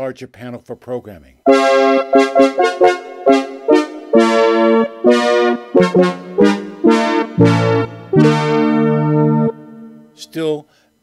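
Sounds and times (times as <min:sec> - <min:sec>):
synthesizer playing short bright notes: 0:01.5 - 0:10.2.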